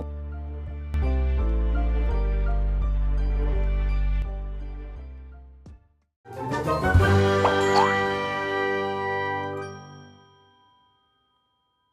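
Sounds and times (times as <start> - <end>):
jingle chimes ringing: 7.3 - 8.6, 9.6 - 11.9
small bright ding: 7.4 - 8.1.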